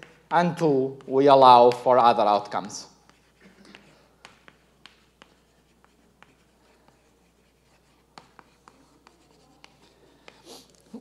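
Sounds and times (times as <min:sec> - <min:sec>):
chalk writing on blackboard: 0:00.0 - 0:01.8, 0:02.6 - 0:10.8.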